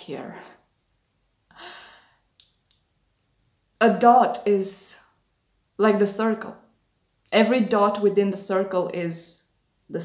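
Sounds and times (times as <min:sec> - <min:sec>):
woman breathing out softly: 0:01.5 - 0:02.3.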